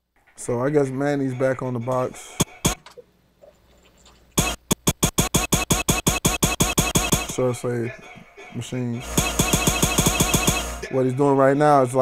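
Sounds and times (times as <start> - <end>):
stuttering pitched sample hits: 4.4 - 7.4, 9.0 - 10.9.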